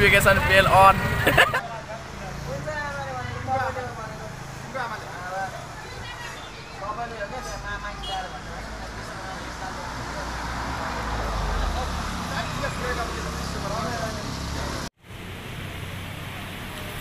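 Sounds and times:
people talking: 0.0s - 14.8s.

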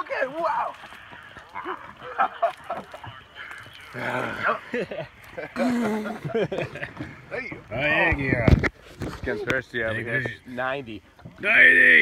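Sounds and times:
men yelling and hooting: 11.4s - 12.0s.

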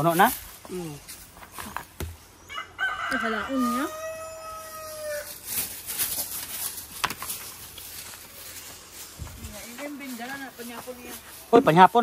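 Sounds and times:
rooster crowing: 2.5s - 5.4s.

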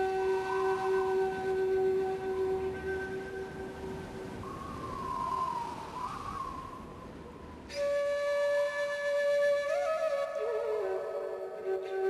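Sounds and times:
soft flute music: 0.0s - 12.0s.

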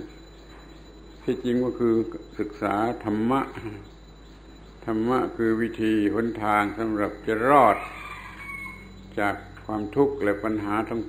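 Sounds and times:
man speaking: 1.2s - 3.9s, 4.8s - 8.0s, 9.1s - 11.0s.

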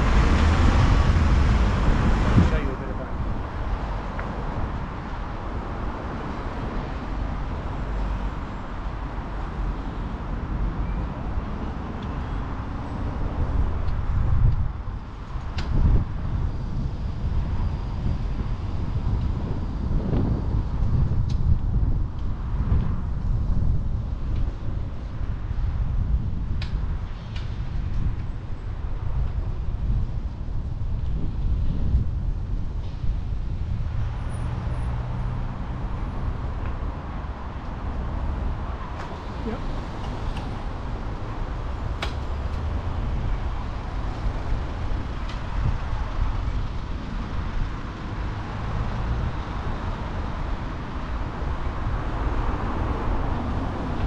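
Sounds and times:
road traffic noise: 0.0s - 54.0s
wind rumbling on microphone: 0.0s - 54.0s.

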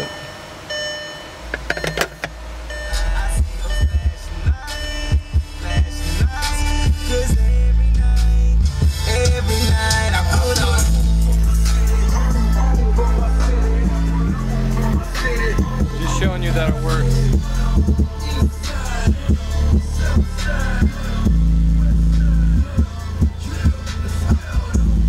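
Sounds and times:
bass-heavy music from car stereo: 0.0s - 25.0s.

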